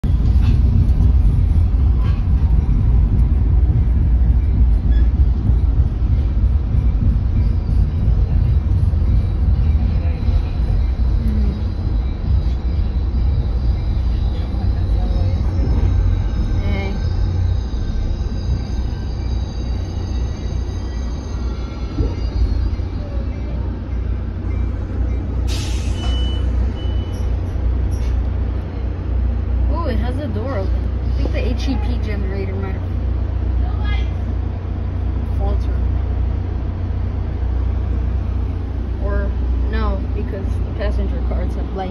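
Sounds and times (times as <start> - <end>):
train rumbling: 0.0 - 41.9.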